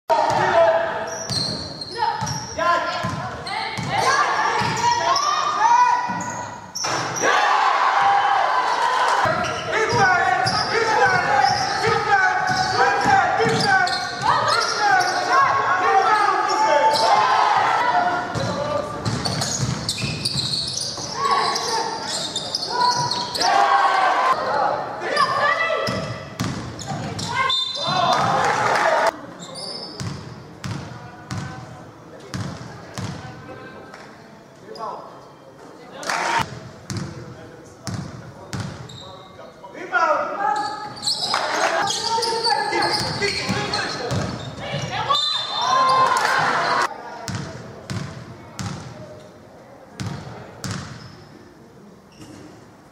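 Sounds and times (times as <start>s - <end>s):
basketball bouncing on court: 2.2s - 4.8s, 18.3s - 21.1s, 25.8s - 28.0s, 42.9s - 44.9s, 47.3s - 48.9s, 50.0s - 51.0s.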